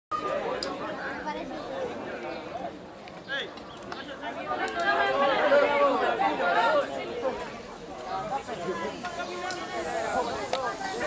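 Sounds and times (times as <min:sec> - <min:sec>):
people chattering: 0:00.1 - 0:11.0.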